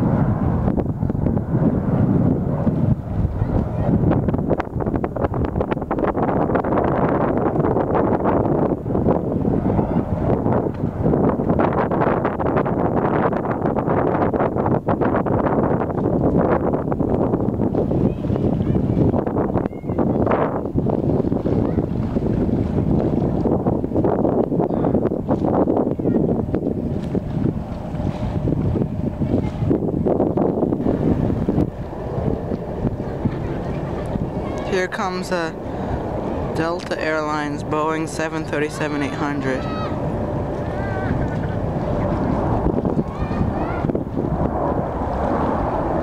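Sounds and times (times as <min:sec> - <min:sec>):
steady low rumble: 0:00.0 - 0:46.0
wind buffeting microphone: 0:00.0 - 0:46.0.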